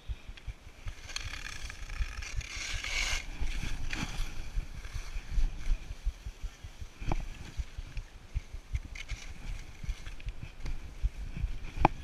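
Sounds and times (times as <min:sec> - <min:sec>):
wind buffeting microphone: 0:00.0 - 0:12.0
skis scraping over snow: 0:00.9 - 0:06.1.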